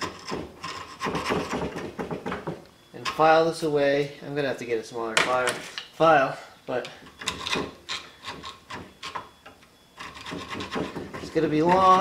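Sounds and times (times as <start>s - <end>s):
file rasping on steel: 10.0s - 12.0s.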